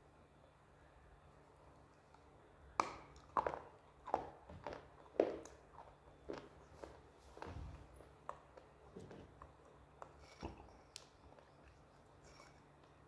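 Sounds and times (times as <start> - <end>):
crunchy stick being chewed: 1.8 - 13.0.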